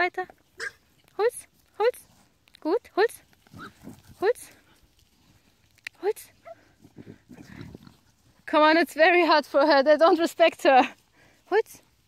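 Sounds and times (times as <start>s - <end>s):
pigs grunting: 7.3s - 8.1s.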